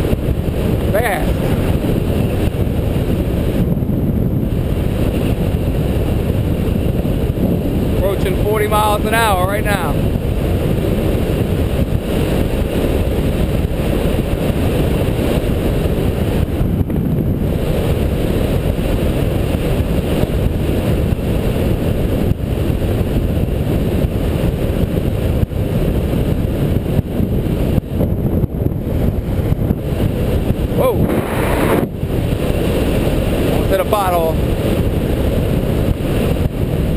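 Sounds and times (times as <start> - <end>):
wind rushing over microphone: 0.0 - 36.9.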